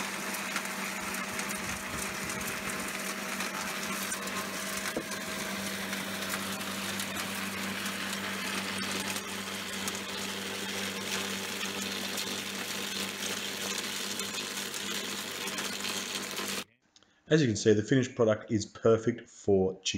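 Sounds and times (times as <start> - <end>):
acorns clicking in chipper: 0.0 - 16.7
wood chipper humming: 0.0 - 16.7.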